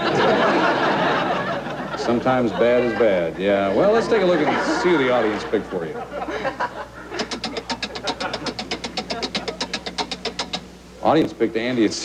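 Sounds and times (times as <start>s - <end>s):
rapid electronic ticks: 7.2s - 10.7s.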